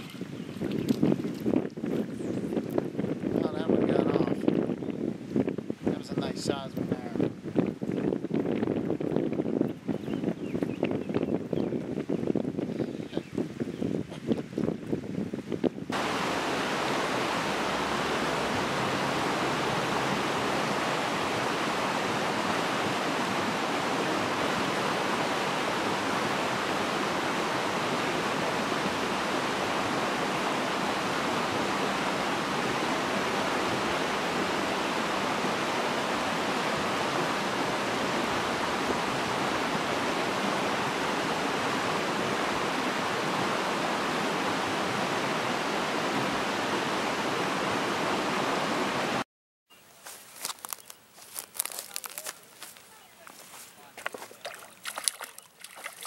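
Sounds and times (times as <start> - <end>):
stream rushing over stones: 0.0 - 1.8, 15.9 - 49.2, 50.3 - 56.0.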